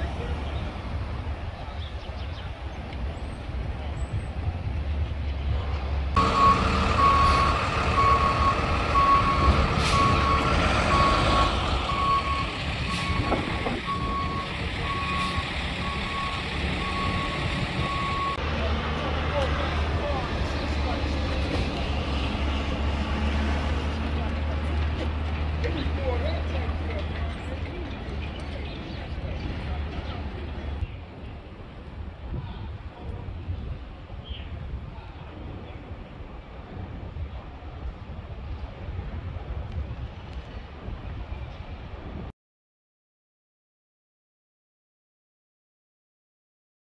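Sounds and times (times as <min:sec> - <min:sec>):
city street traffic rumble: 0:00.0 - 0:42.3
reversing alarm beeping: 0:06.2 - 0:18.4.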